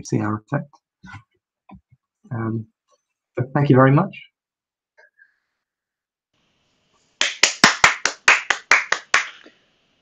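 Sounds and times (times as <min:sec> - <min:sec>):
person clapping: 0:07.2 - 0:09.6.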